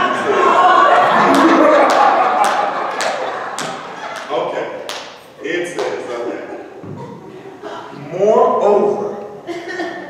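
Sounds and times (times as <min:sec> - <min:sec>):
man speaking in reverberant church: 0:04.2 - 0:06.8, 0:07.9 - 0:09.5.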